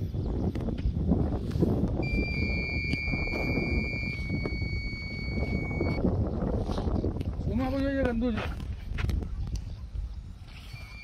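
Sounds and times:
wind rumbling on microphone: 0:00.0 - 0:11.0
high electronic tone: 0:02.0 - 0:06.0.

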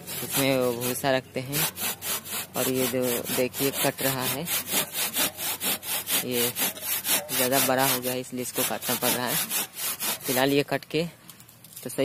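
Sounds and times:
hand saw cutting wood: 0:00.0 - 0:10.7.

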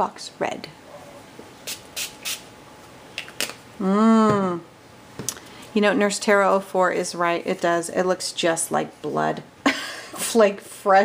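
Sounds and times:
spray bottle short hisses: 0:01.7 - 0:02.5.

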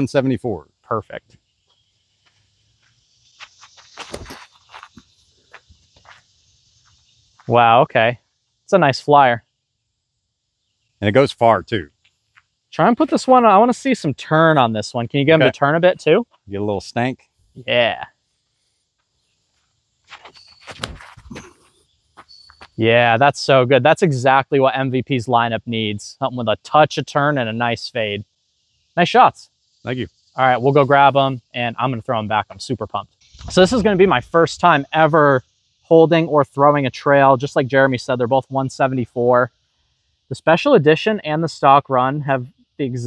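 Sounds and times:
footsteps scuffing on grass: 0:02.2 - 0:07.6, 0:20.0 - 0:21.6, 0:22.2 - 0:22.8.

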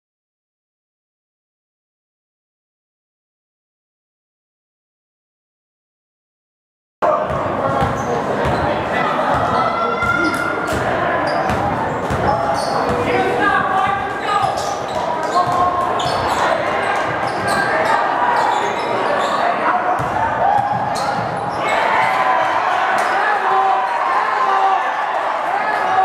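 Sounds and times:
hum of crowd voices: 0:07.0 - 0:26.0.

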